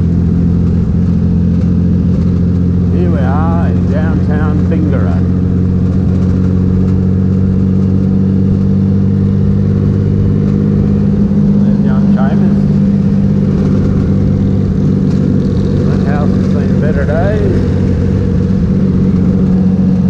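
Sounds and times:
motorcycle engine cruising: 0.0 - 20.0.

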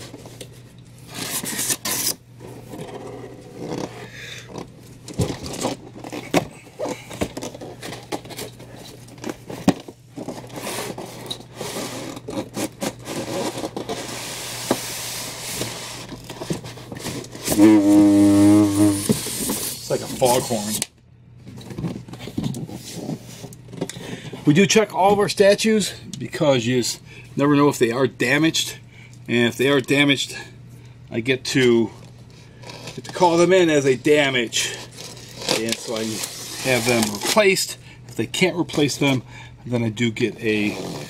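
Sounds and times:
cardboard scraping on foam: 34.8 - 37.4.

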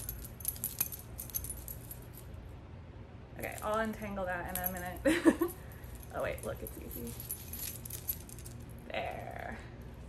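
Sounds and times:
necklace chain jingling: 0.0 - 2.4, 3.4 - 10.0
low steady hum: 0.0 - 10.0.

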